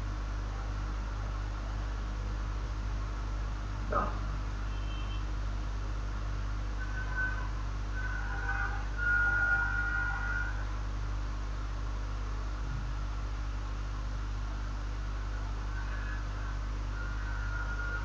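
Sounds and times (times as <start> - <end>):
low electrical hum: 0.0 - 18.0.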